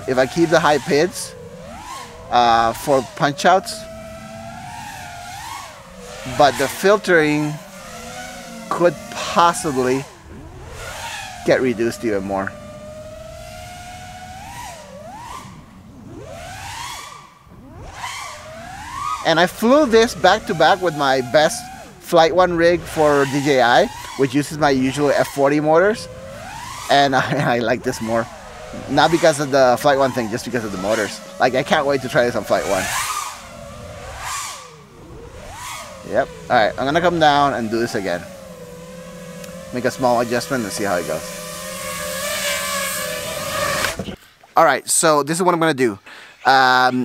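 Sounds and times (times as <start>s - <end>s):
drone motors whining: 0.0s - 44.4s.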